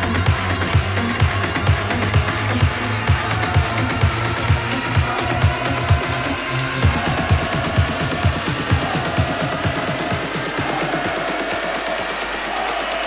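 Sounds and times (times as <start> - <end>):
kick drum: 0.0 - 11.6
electronic dance music: 0.0 - 13.0
fast hi-hats: 0.0 - 13.0.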